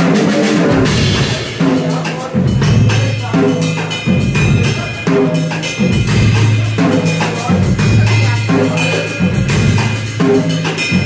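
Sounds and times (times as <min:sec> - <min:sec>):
drum kit beat: 0:00.0 - 0:11.0.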